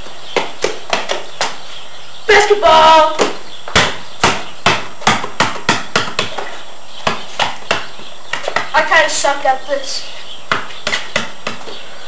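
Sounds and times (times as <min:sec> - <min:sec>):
basketball bouncing on concrete: 0:00.3 - 0:01.6, 0:03.0 - 0:08.9, 0:10.4 - 0:11.8.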